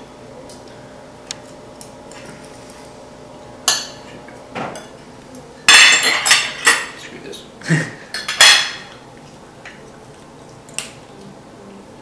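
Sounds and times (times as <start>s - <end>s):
cutlery clinking on plates: 5.7s - 7.0s, 8.1s - 8.9s.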